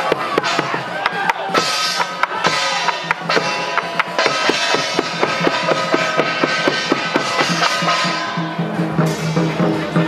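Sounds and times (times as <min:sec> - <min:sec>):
drum beating: 0:00.0 - 0:10.0
brass gongs ringing: 0:01.6 - 0:09.5.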